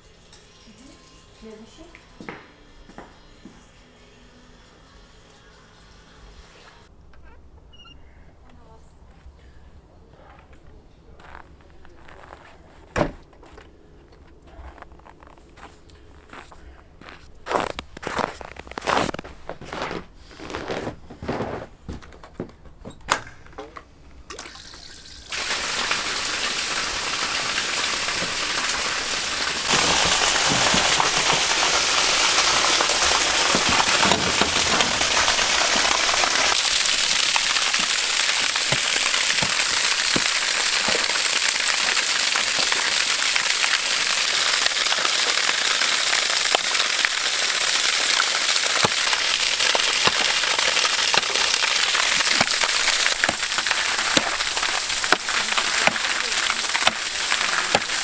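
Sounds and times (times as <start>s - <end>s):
water gushing from a hose: 24.3s - 58.0s.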